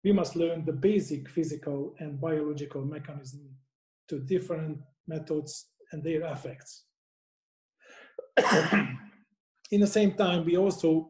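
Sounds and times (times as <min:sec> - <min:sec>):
man coughing: 0:08.2 - 0:09.1.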